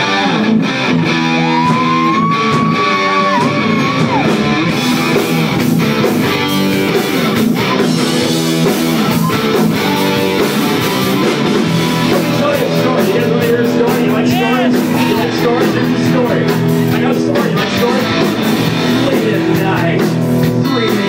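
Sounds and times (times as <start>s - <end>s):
electric guitar: 0.0s - 21.0s
rock band playing: 0.0s - 21.0s.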